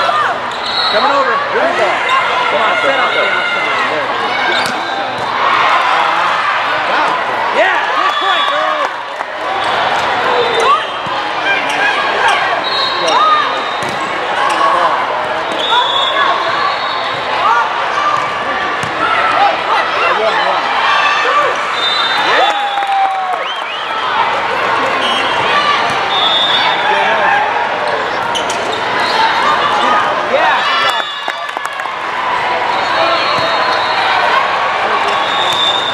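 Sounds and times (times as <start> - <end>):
people chattering and calling: 0.0 - 35.9
voices and shouts: 0.0 - 35.9
sneakers squeaking on court: 27.9 - 29.2.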